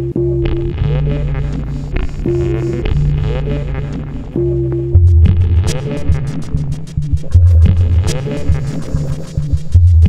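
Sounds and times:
held higher synth note: 0.0s - 6.5s
droning electronic bass notes: 0.0s - 10.0s.

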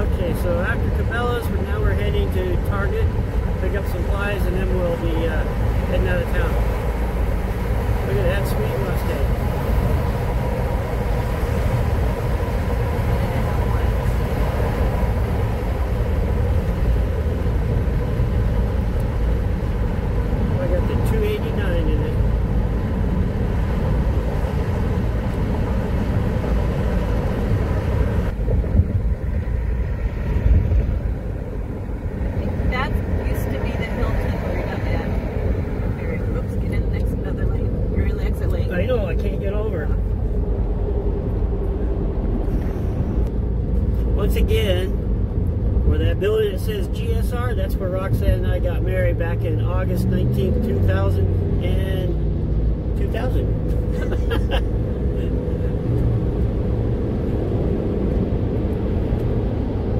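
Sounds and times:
road and engine rumble: 0.0s - 59.9s.

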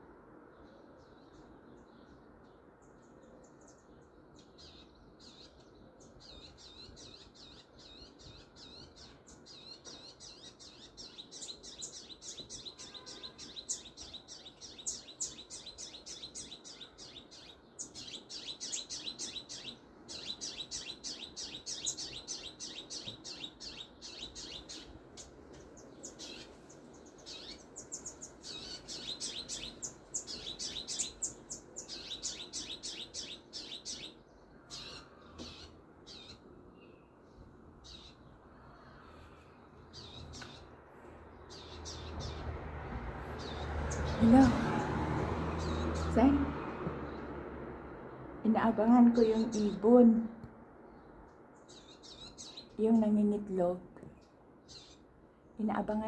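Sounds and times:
songbird chirping: 0.0s - 56.0s.

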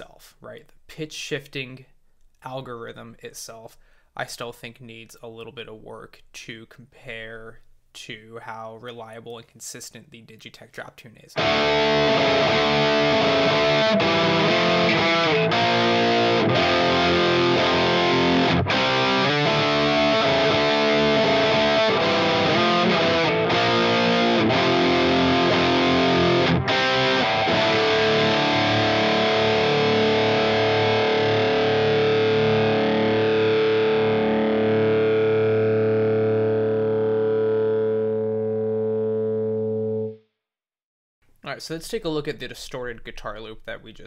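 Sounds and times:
distorted electric guitar riff: 11.4s - 40.2s.

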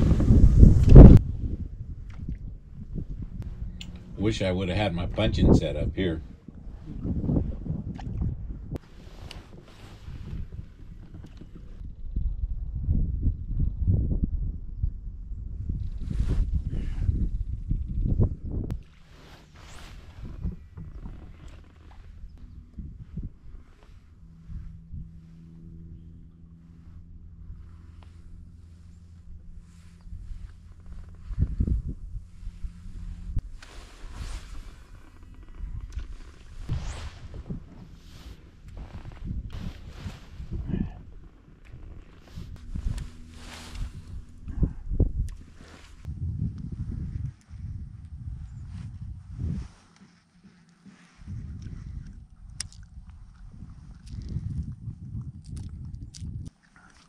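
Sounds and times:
trolling motor electric hum: 0.0s - 12.5s, 17.1s - 47.8s
low rumbling: 0.0s - 50.0s, 51.0s - 57.0s.

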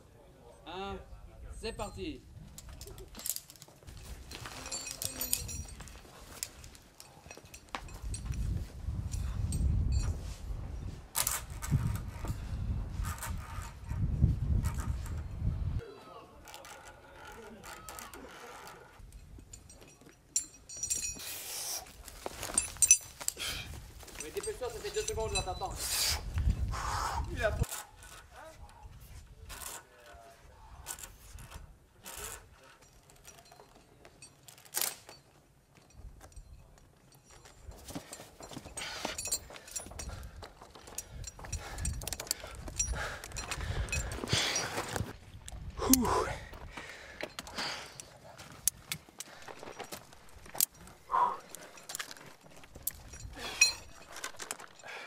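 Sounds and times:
low rumbling gusts: 41.0s - 47.1s.

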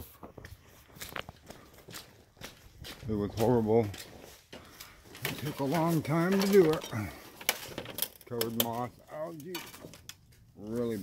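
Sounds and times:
footsteps walking: 0.0s - 7.8s.

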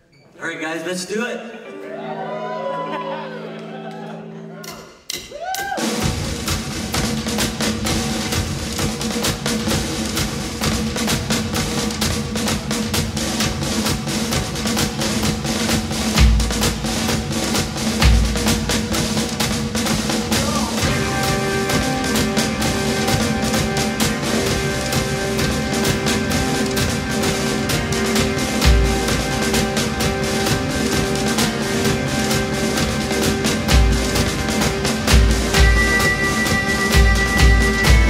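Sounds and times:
pitched instruments playing: 0.8s - 5.4s, 20.2s - 38.0s
drum kit beating: 4.6s - 38.0s.

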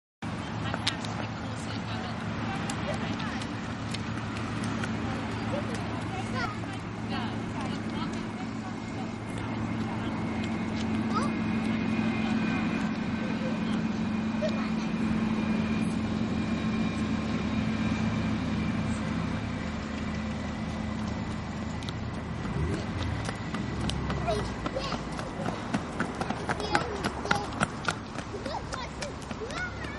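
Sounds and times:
engine drone: 0.2s - 29.9s.

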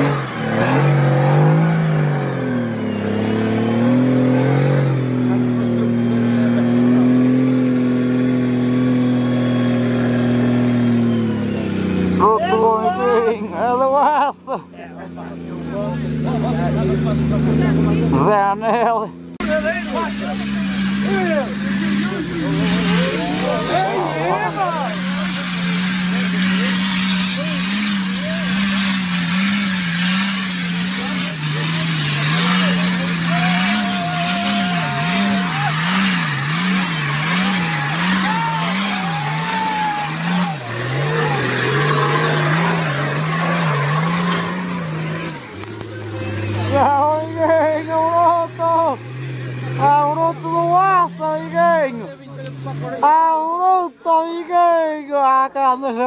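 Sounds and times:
engines revving high: 0.0s - 56.0s
faint spectators' voices: 1.9s - 8.3s, 19.4s - 29.1s, 30.4s - 56.0s.

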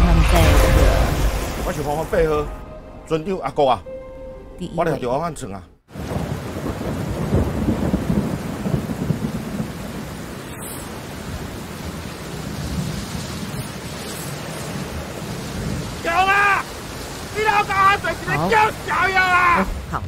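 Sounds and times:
steady rain: 5.9s - 20.0s
person speaking: 17.3s - 20.0s.

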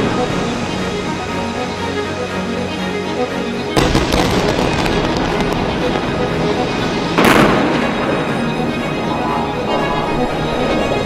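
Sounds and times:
music: 0.0s - 11.0s
explosions: 3.8s - 8.5s.

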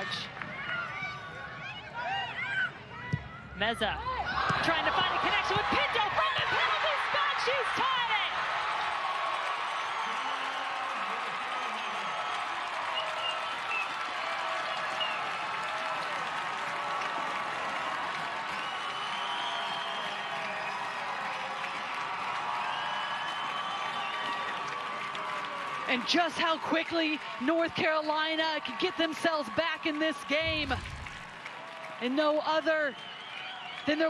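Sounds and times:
crowd shouts: 0.0s - 32.1s
stadium crowd cheering: 0.0s - 34.0s.

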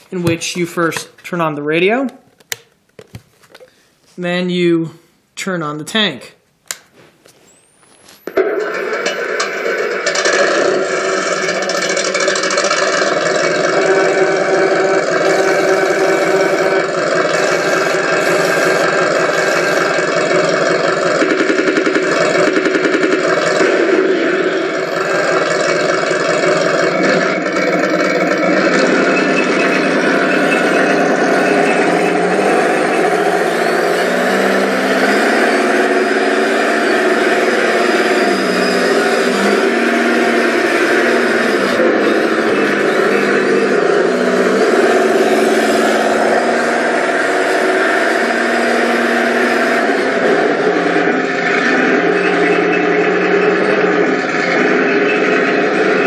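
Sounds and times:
simulated tank engine from speaker: 10.8s - 21.2s, 23.5s - 56.0s.

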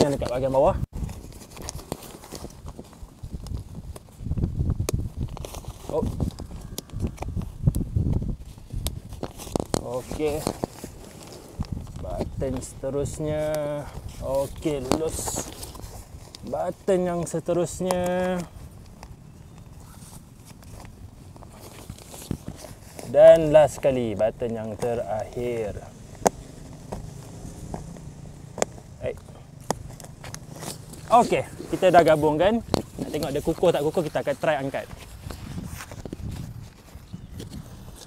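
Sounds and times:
fabric rustling and ticks: 1.2s - 36.8s
fabric rustle: 29.8s - 38.0s.

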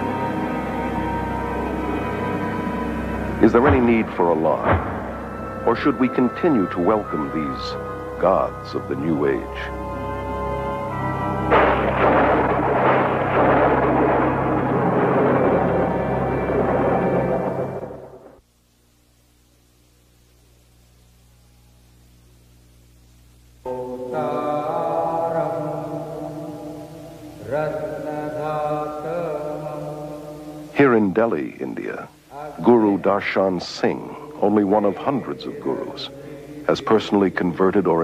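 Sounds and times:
held music chord: 0.0s - 18.3s
voice chanting mantra: 3.4s - 9.8s, 23.6s - 38.0s
thunderclap rumbling: 3.5s - 5.9s, 11.4s - 18.4s.

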